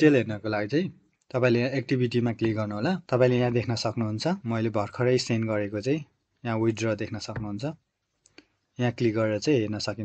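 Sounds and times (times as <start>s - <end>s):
man speaking: 0.0s - 7.9s, 8.8s - 10.0s.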